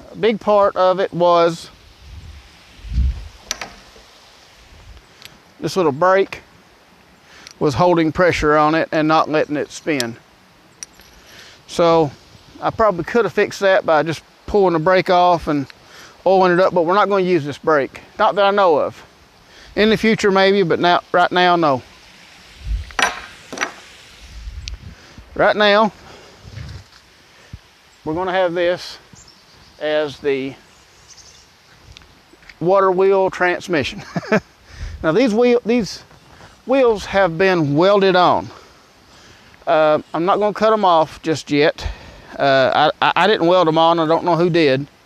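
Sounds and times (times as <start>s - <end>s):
faint hiss: 0.0s - 45.0s
sharp metallic clinks: 10.8s - 11.3s, 23.0s - 23.8s.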